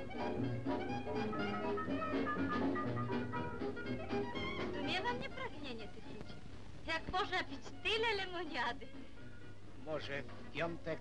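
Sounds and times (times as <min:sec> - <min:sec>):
dance band playing jazz: 0:00.0 - 0:05.2.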